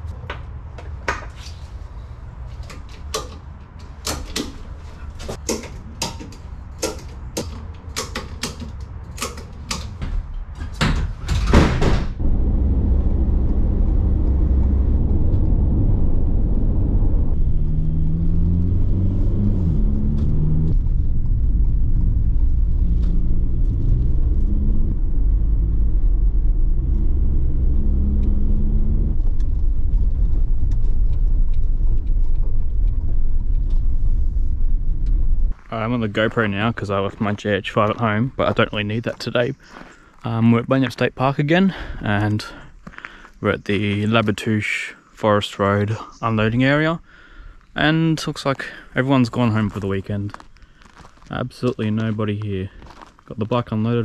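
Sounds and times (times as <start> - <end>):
van driving rumble from inside: 11.9 - 36.3.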